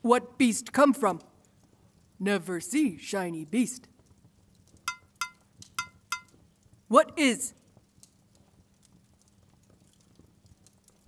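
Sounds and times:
metallic clinks: 0:04.9 - 0:06.4.

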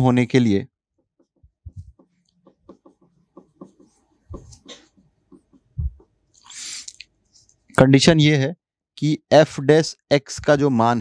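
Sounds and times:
marker scratching on whiteboard: 0:01.0 - 0:06.9
low thumps: 0:01.2 - 0:04.7, 0:05.3 - 0:06.2.

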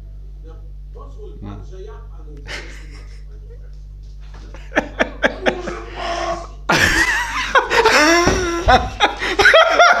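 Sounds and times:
people laughing loudly: 0:02.5 - 0:03.7, 0:04.4 - 0:10.0.

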